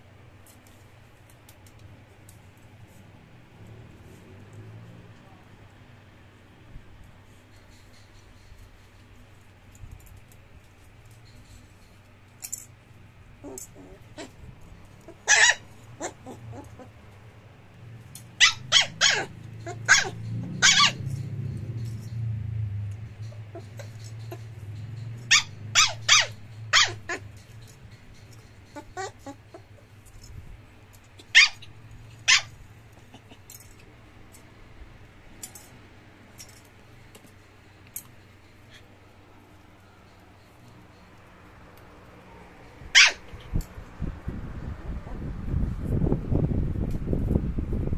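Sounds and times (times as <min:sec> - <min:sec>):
puppy yipping: 0:13.4 - 0:14.4, 0:15.0 - 0:17.0, 0:18.3 - 0:22.1, 0:23.2 - 0:29.8, 0:31.2 - 0:33.4, 0:42.9 - 0:43.5.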